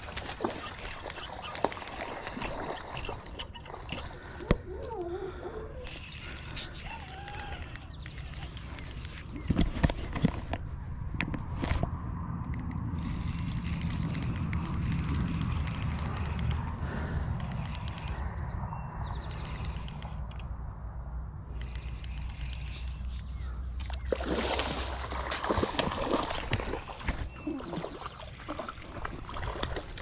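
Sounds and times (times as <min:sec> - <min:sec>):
handling knocks and clicks: 0:08.0 - 0:12.9
wind rumble on microphone: 0:09.0 - 0:21.7.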